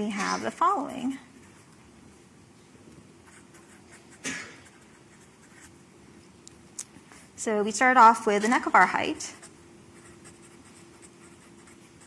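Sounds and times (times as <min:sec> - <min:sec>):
steady low hum: 0:00.0 - 0:12.0
marker scratching on paper: 0:03.2 - 0:05.7, 0:09.2 - 0:12.0.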